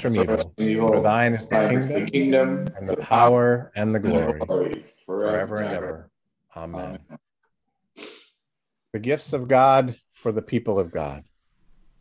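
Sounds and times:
man speaking: 0.0 - 7.2, 9.0 - 11.3
sharp intake of breath: 8.0 - 8.4.

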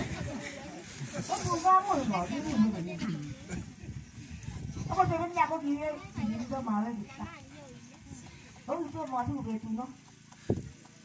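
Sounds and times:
woman speaking: 8.7 - 10.0.

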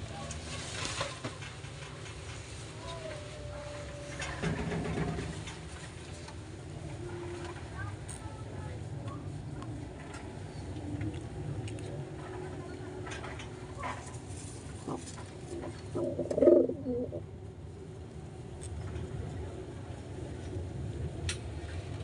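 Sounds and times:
steady low rumble: 3.8 - 22.0
pigeons cooing: 14.8 - 17.3.

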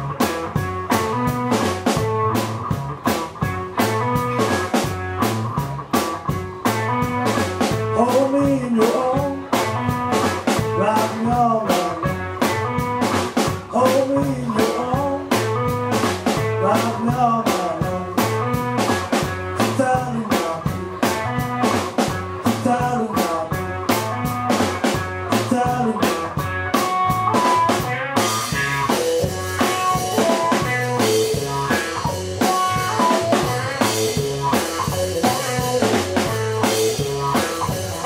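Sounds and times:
drum kit beat: 0.0 - 38.0
electric guitar lead lines: 0.0 - 38.0.

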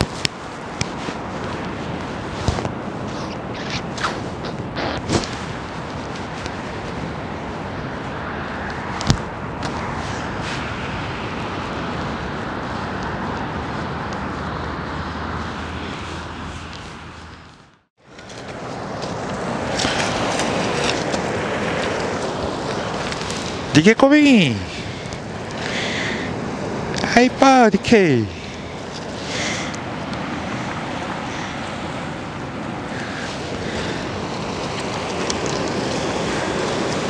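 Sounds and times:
ocean surf breaking on shore: 0.0 - 17.4, 18.0 - 37.0.

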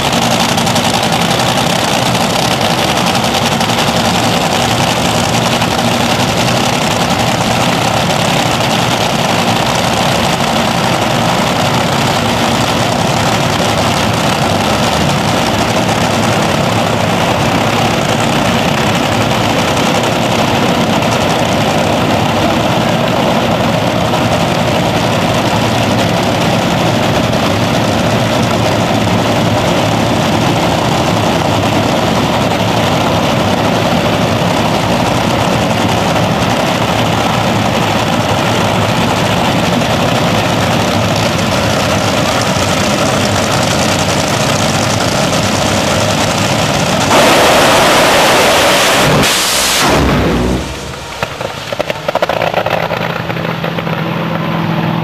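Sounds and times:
dragster engine: 0.0 - 55.0.

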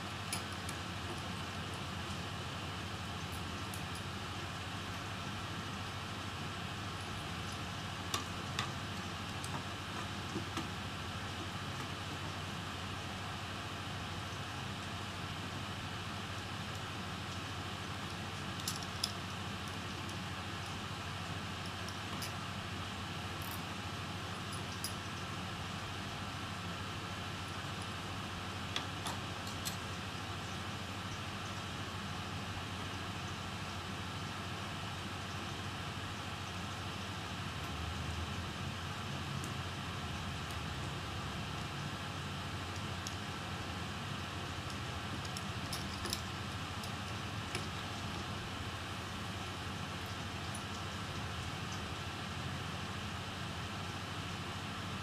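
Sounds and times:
small metal tools clicking: 18.6 - 20.8, 44.7 - 47.8.

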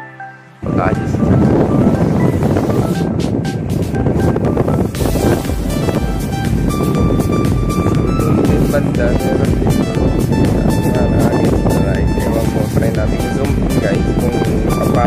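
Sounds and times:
background music with beat: 0.0 - 15.0.

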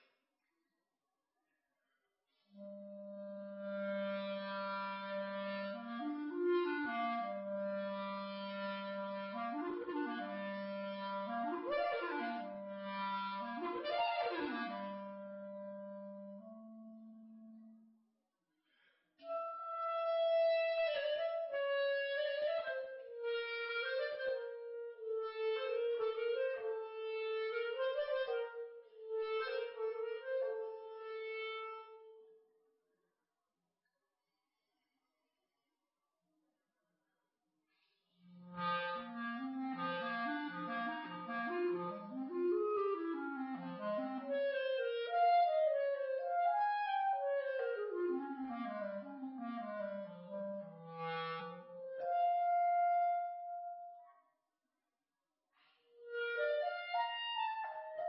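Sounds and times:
clarinet playing: 2.6 - 17.8, 19.2 - 32.3, 38.4 - 54.1, 55.9 - 58.0.

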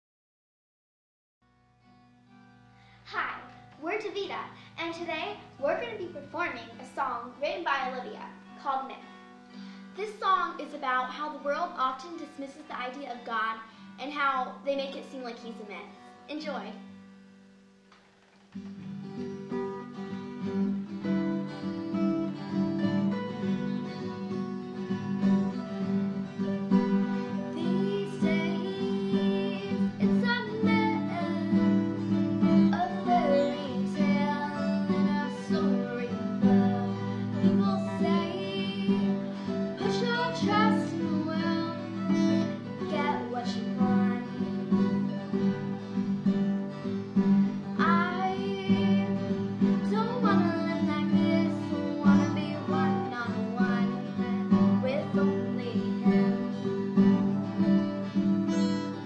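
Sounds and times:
acoustic guitars strumming: 1.5 - 59.0
girls singing: 27.5 - 44.4, 47.8 - 56.6.

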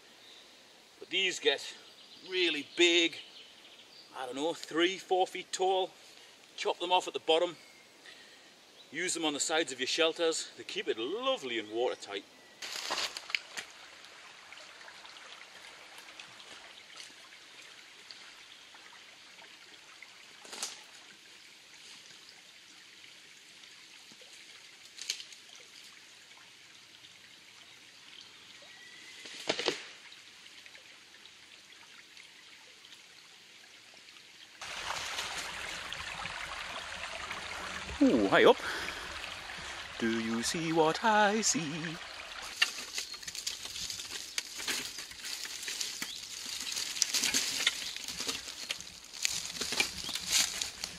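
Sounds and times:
stream trickling over stones: 0.0 - 50.9.

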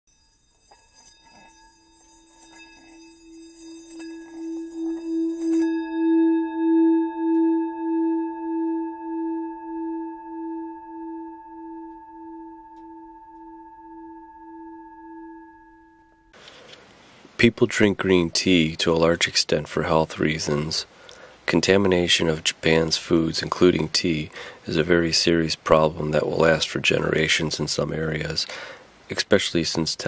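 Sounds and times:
faint rubbing noise: 0.1 - 5.7
metallic ringing tone: 0.1 - 16.4, 21.5 - 25.4.

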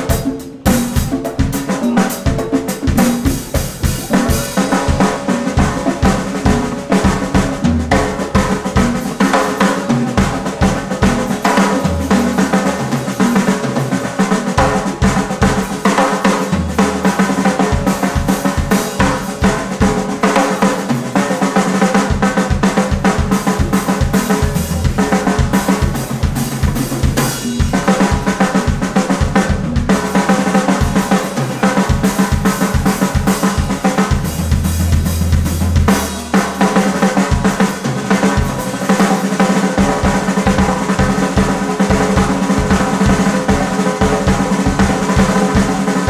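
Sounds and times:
bass guitar: 0.0 - 15.7, 23.1 - 39.2
drum kit beating busy pattern: 0.0 - 46.0.

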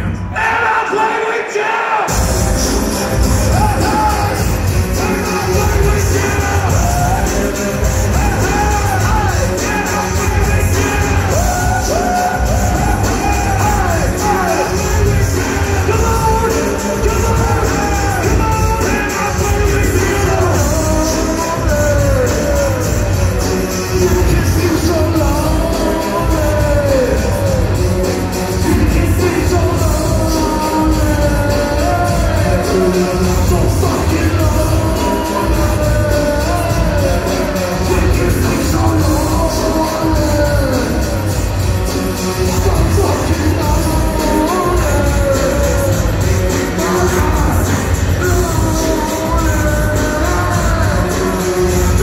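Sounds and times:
heavy bass beat: 2.1 - 52.0.

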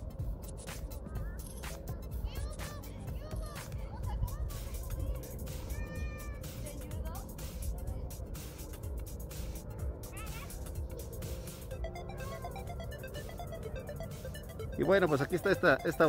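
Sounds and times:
distant voices: 0.0 - 16.0
faint music: 0.0 - 16.0.

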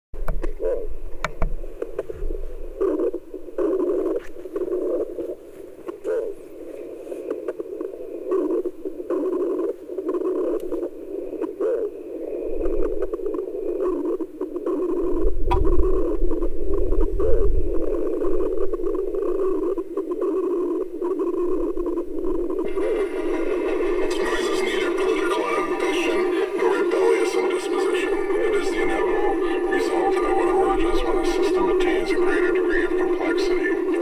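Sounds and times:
crackling noise band: 0.2 - 34.0
low rumble: 21.9 - 34.0.

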